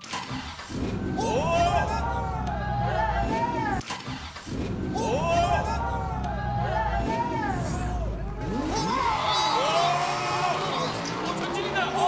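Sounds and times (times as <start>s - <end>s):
car engine starting and revving: 4.5s - 12.0s.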